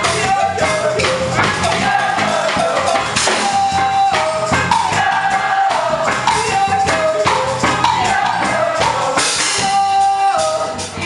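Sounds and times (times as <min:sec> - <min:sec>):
drum kit: 0:00.0 - 0:11.0
jazz band playing: 0:00.0 - 0:11.0.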